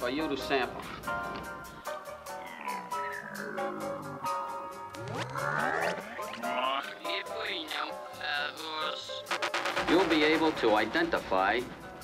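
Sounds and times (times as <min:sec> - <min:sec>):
psytrance electronic music: 0:09.3 - 0:12.0.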